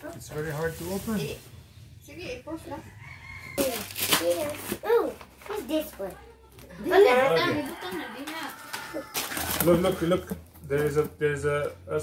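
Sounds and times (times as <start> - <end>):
tape and cardboard ripping: 3.6 - 5.6, 8.7 - 10.0.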